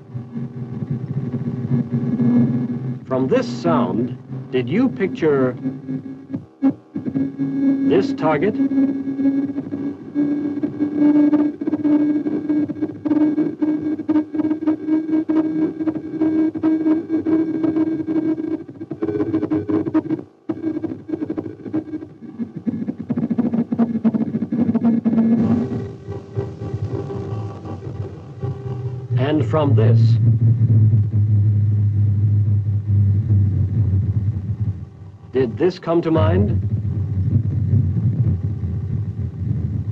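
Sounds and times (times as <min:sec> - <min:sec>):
buzzing radar tone with flutter: 0:00.0 - 0:39.9.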